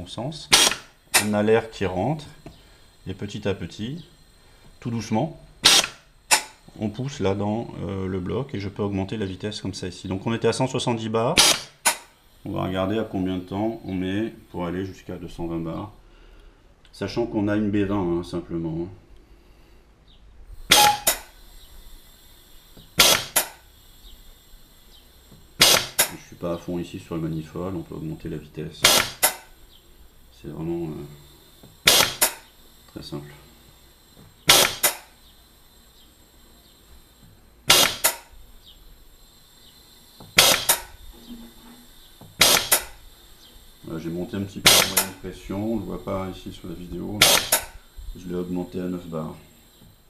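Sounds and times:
gas booster air exhaust puffs: 0.0 - 8.7, 9.5 - 16.9, 19.0 - 50.0
faint hiss: 0.0 - 50.0.

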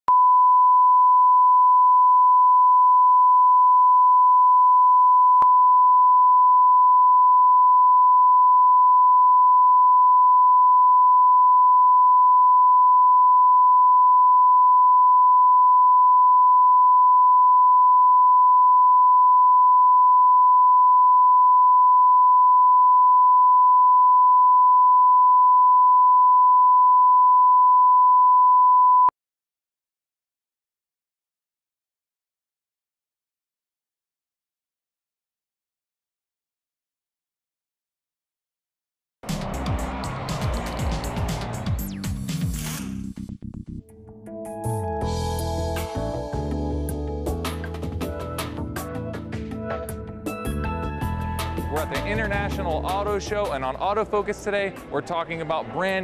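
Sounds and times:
steady sine reference tone: 0.1 - 29.1.

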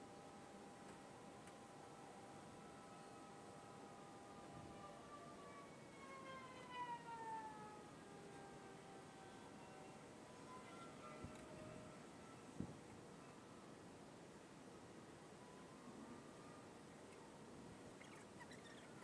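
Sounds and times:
faint distant siren: 0.0 - 19.0.

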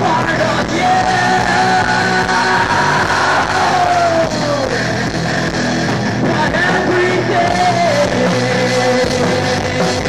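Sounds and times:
live rock band playing loud: 0.0 - 10.0.

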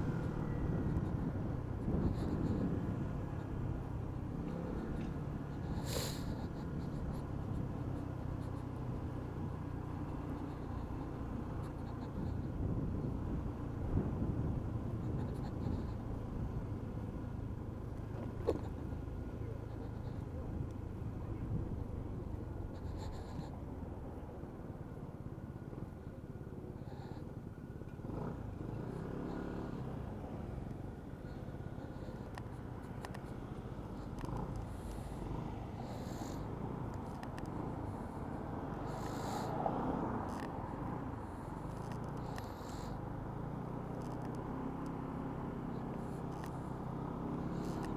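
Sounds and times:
road and wind noise: 0.0 - 47.9.

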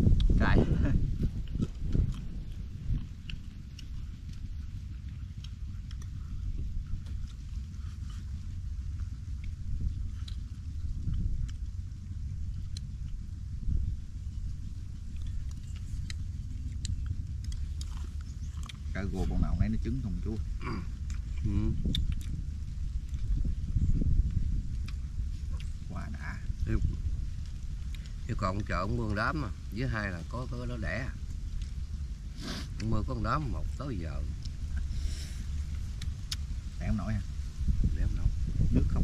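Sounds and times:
chewing: 0.0 - 37.5
low rumble: 0.0 - 39.0.

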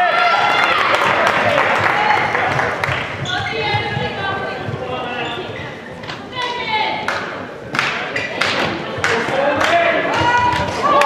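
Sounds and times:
voices in large hall: 0.0 - 11.0
ball bouncing on hall floor: 1.0 - 11.0.

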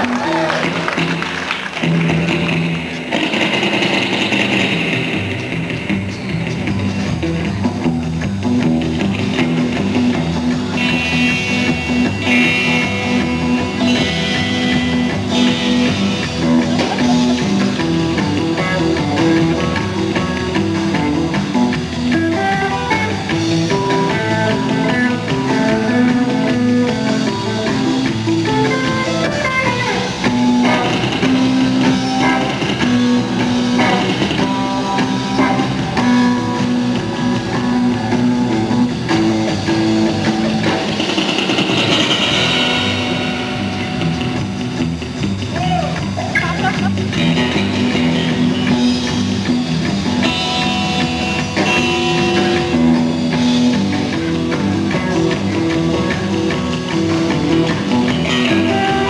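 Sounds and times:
drum kit beat: 0.0 - 59.0
electric bass: 0.0 - 59.0
electric guitars: 0.0 - 59.0.

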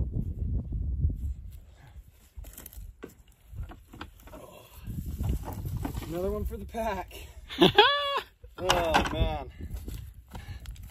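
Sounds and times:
wind rumble on microphone: 0.0 - 7.8, 8.4 - 10.9
footsteps on rocky dirt: 8.8 - 10.9.

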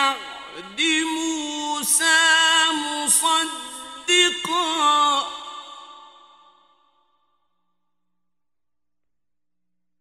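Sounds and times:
man chanting with echo: 0.0 - 6.9.

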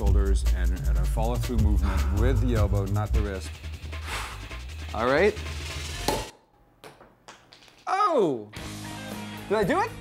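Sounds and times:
backing music: 0.0 - 6.3, 8.5 - 10.0.

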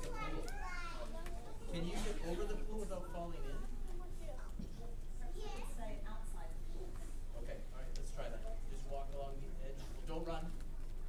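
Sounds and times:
young children chattering: 0.0 - 7.3.

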